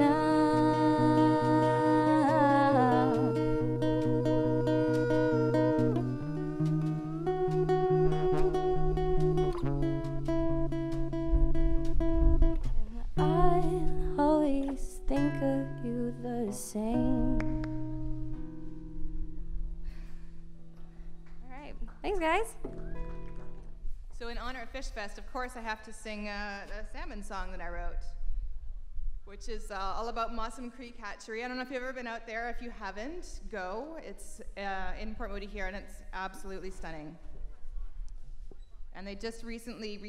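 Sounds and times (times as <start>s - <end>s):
woman singing with vibrato: 0.0s - 9.2s, 13.2s - 17.9s
acoustic guitar strumming: 0.0s - 21.2s, 22.1s - 23.9s.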